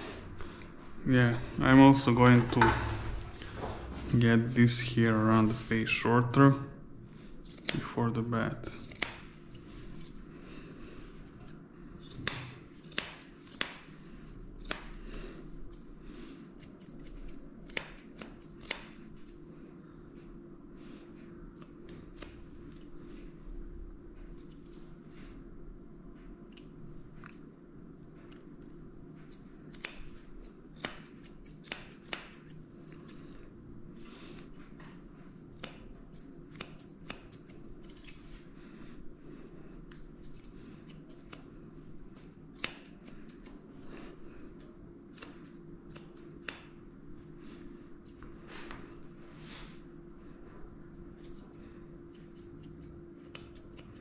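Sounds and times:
steady low hum: 0.0s - 54.0s
scissors snipping hair: 7.4s - 10.2s, 11.3s - 19.4s, 21.5s - 23.0s, 24.3s - 24.9s, 26.4s - 27.5s, 29.2s - 33.3s, 35.5s - 38.3s, 39.9s - 43.6s, 44.5s - 46.8s, 48.0s - 48.3s, 51.2s - 54.0s.

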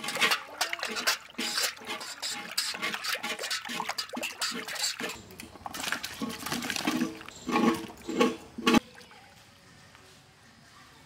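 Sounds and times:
food splashing into bowl of water: 3.7s - 8.9s.

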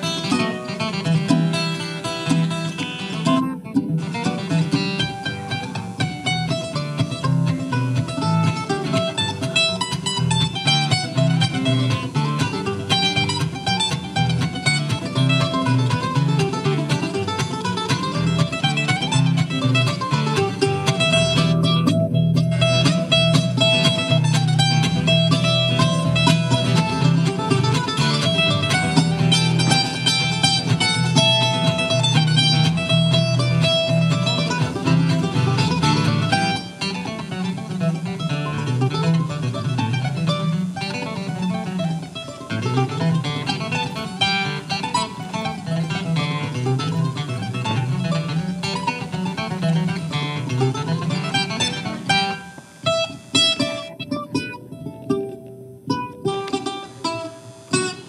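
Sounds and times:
acoustic guitar: 0.0s - 58.0s
mandolin: 0.0s - 58.0s.

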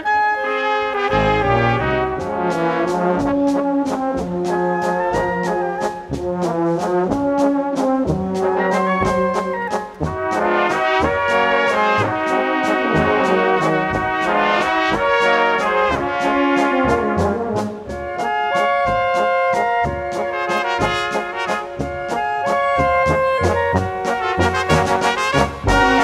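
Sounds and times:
brass band playing: 0.0s - 26.0s
steady drum beat: 1.1s - 26.0s.

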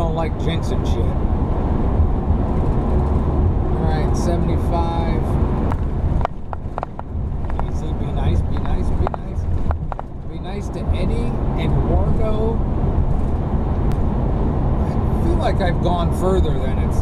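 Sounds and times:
road and engine rumble: 0.0s - 17.0s.

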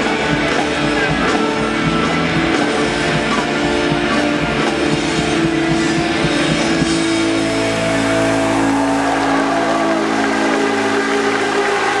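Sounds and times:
distorted electric guitars: 0.0s - 12.0s
drums: 0.0s - 12.0s.

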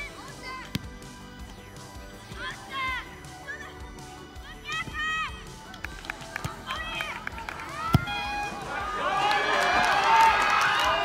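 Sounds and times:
sharp ball kick: 0.7s - 1.0s, 7.8s - 8.4s
players shouting: 4.4s - 11.0s
feet knocking ball: 7.8s - 8.6s.

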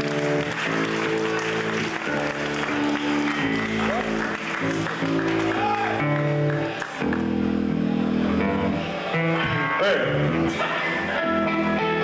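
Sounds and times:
bass guitar droning: 1.8s - 12.0s.

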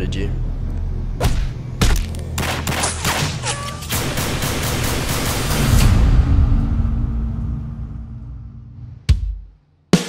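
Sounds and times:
low rumbling drone: 0.0s - 3.0s, 3.9s - 9.1s
steady low hum: 0.0s - 9.7s.

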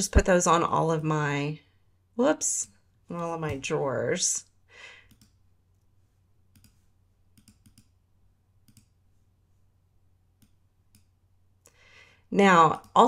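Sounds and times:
faint computer mouse clicks: 5.1s - 5.4s, 6.5s - 6.8s, 7.4s - 8.0s, 8.6s - 9.0s, 10.4s - 11.1s.

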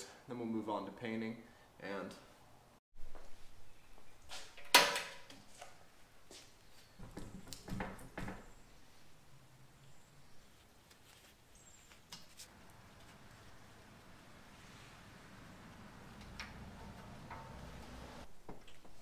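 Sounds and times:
metal knocks and clanks: 16.2s - 18.2s.

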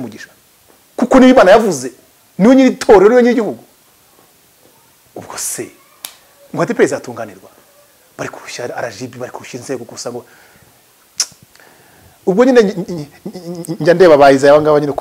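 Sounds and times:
man speaking: 1.0s - 3.7s, 5.2s - 5.9s, 6.5s - 7.6s, 8.2s - 10.3s, 12.2s - 15.0s
sharp click: 11.2s - 11.4s.

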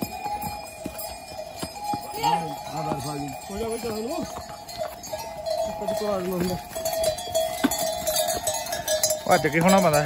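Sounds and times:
bells ringing: 0.0s - 10.0s
steps on a stone path: 0.0s - 10.0s.

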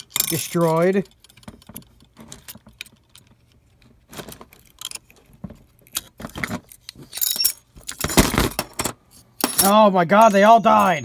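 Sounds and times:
small metal parts clinking: 0.0s - 11.0s.

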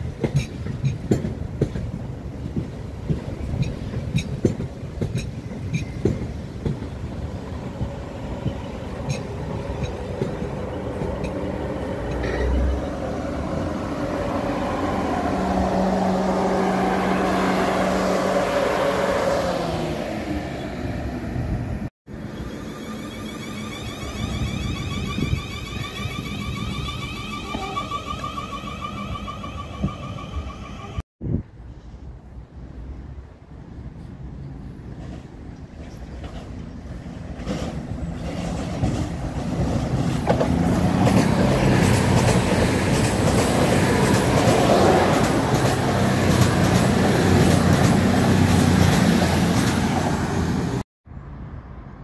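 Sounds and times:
train wheels on rails: 0.0s - 20.6s, 34.0s - 50.8s.

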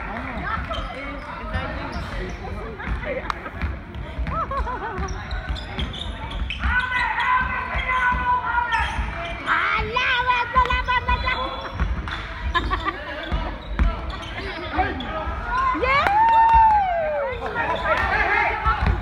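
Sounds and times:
basketball bouncing on gym floor: 2.8s - 6.8s, 7.4s - 14.2s, 18.6s - 19.0s
players shouting: 6.6s - 11.4s.

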